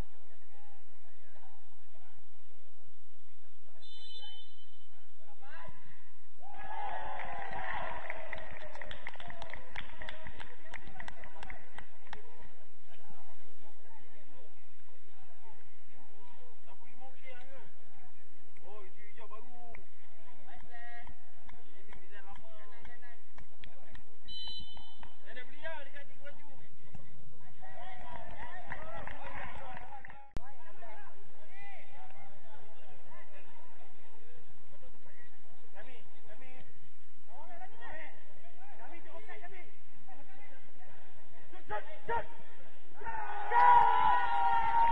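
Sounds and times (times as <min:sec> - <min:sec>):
footballers shouting: 0:06.4 - 0:10.4, 0:41.6 - 0:44.9
players shouting to each other: 0:41.7 - 0:44.9.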